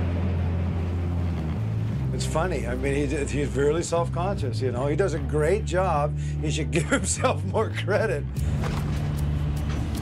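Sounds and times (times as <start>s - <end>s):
boat engine rumble: 0.0s - 10.0s.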